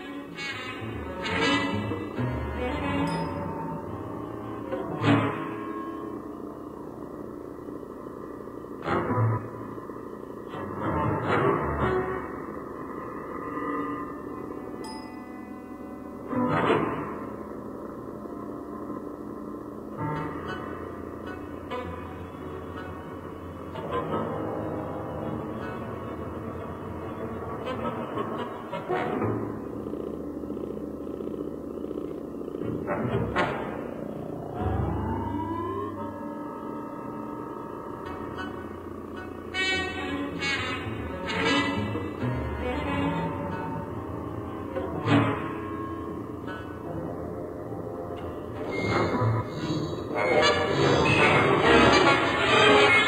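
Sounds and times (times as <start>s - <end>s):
electroacoustic drone music: 0.0s - 53.0s.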